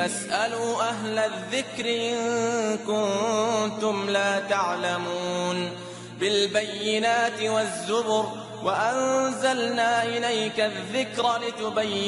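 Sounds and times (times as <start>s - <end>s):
person chanting melodically: 0.0s - 12.0s.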